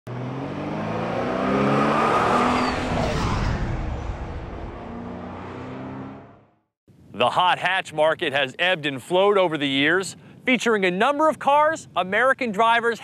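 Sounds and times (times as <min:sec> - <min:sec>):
car engine revving past: 0:00.1 - 0:06.6
tire and air rush: 0:00.4 - 0:06.6.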